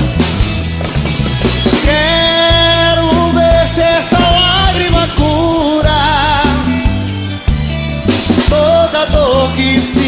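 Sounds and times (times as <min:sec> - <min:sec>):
drum kit strikes: 0:00.0 - 0:10.0
live band playing: 0:00.0 - 0:10.0
person singing: 0:01.7 - 0:07.1, 0:08.3 - 0:10.0.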